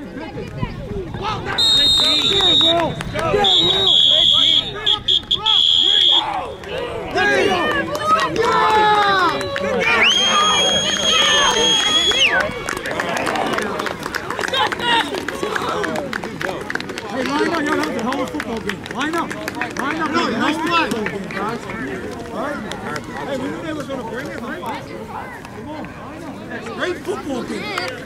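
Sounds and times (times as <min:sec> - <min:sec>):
referee's whistle blasts: 0:01.5 - 0:06.4, 0:10.0 - 0:12.4.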